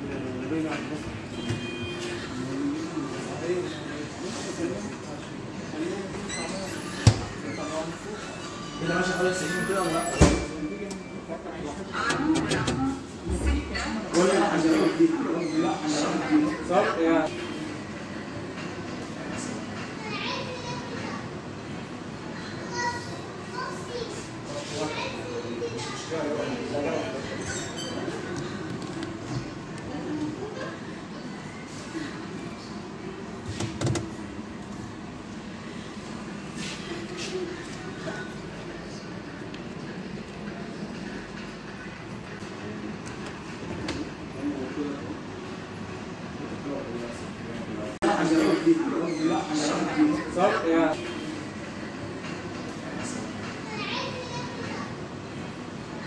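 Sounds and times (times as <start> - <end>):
shop floor hubbub: 0.0 - 56.0.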